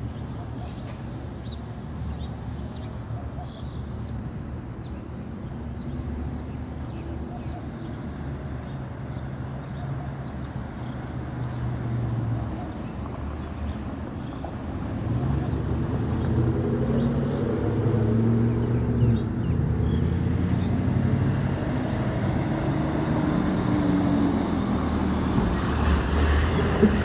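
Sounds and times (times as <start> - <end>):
car traffic rumble: 0.0 - 27.0.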